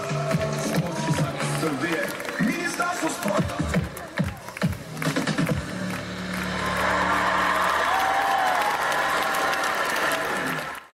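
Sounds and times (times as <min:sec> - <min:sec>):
cheerdance music: 0:00.0 - 0:08.5
audience applause: 0:00.4 - 0:10.9.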